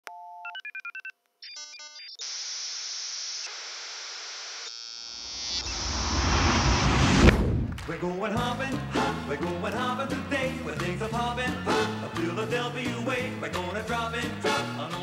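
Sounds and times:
static hiss: 0:02.2 - 0:06.3
sharp hit: 0:05.3 - 0:07.9
deep rumble: 0:05.6 - 0:08.0.

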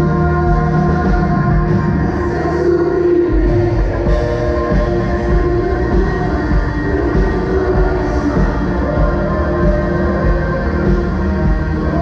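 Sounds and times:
electric guitar with effects: 0:00.0 - 0:12.0
steady low pulse: 0:00.0 - 0:12.0.

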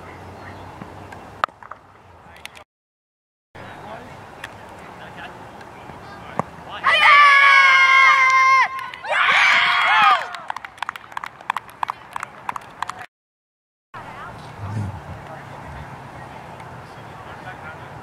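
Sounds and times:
girls shouting: 0:06.8 - 0:10.3.

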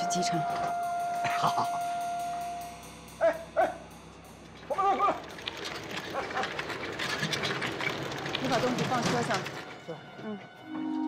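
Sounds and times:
background music note: 0:00.0 - 0:05.5, 0:09.6 - 0:11.0.

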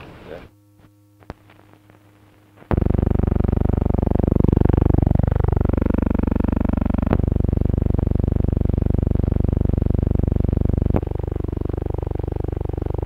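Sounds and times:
faint low hum: 0:00.0 - 0:13.0
loud buzzing electronic tone: 0:00.5 - 0:13.0.

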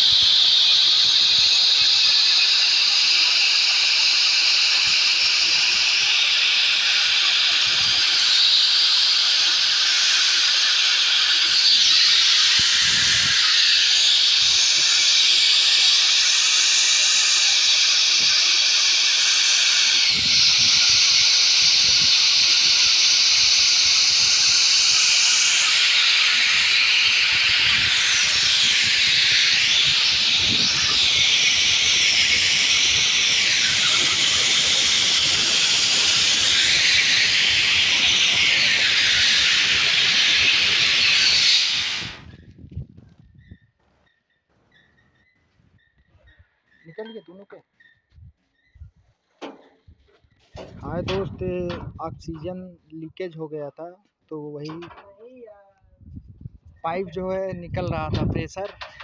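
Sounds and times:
gas venting hiss: 0:00.0 - 0:42.4.

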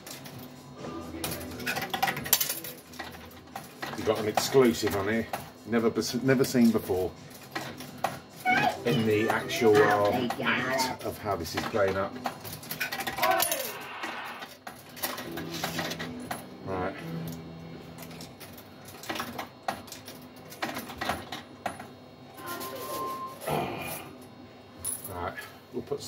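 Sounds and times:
tokens clicking into coin slot: 0:01.2 - 0:05.2, 0:07.5 - 0:13.8.

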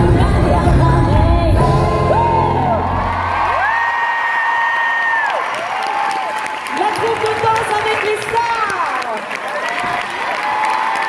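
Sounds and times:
woman singing: 0:00.0 - 0:02.8
live pop backing music: 0:00.0 - 0:03.4
crowd whooping and cheering: 0:01.8 - 0:07.1, 0:08.4 - 0:11.0.

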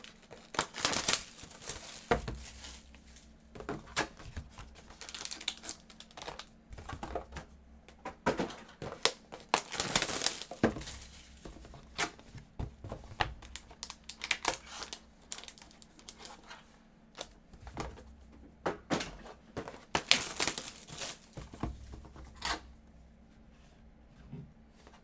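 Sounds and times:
foil wrappers crinkling: 0:00.0 - 0:03.4, 0:04.0 - 0:06.6, 0:08.8 - 0:11.9, 0:13.3 - 0:16.5, 0:19.6 - 0:21.6.

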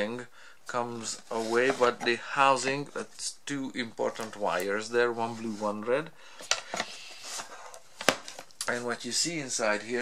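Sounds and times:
plastic rubbing against plastic: 0:01.0 - 0:02.2.

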